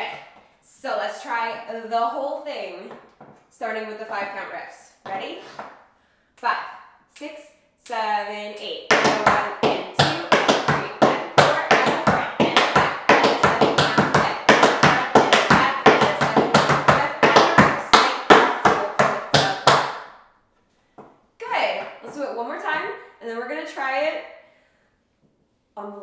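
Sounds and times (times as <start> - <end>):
woman speaking: 0.0 - 2.9, 3.6 - 5.6, 6.4 - 19.7, 21.4 - 24.2, 25.8 - 26.0
tap shoes on wooden board: 8.9 - 20.0.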